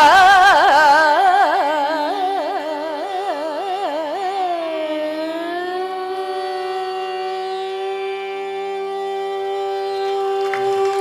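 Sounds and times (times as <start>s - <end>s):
tambura drone: 0.0s - 11.0s
woman singing: 0.0s - 11.0s.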